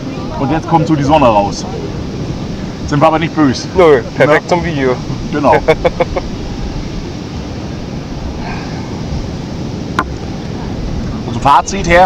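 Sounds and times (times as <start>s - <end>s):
surf washing: 0.0s - 12.0s
wind buffeting microphone: 0.0s - 12.0s.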